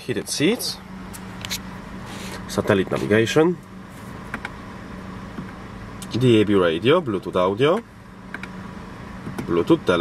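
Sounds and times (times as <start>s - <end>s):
car cabin hum and hiss: 0.0s - 10.0s.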